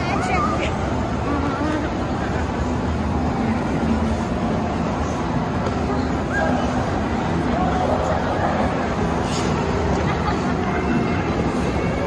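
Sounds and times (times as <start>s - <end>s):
crowd and hall rumble: 0.0s - 12.0s.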